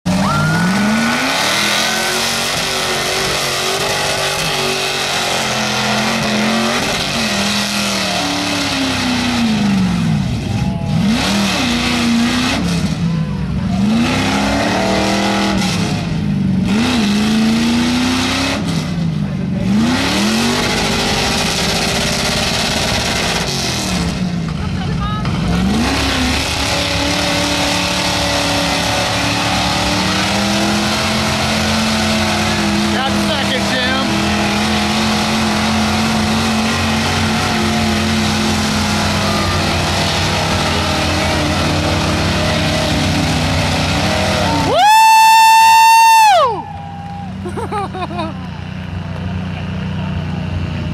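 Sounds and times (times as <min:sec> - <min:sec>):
truck engine revving: 0:00.0 - 0:50.9
tires spinning through mud: 0:00.1 - 0:50.9.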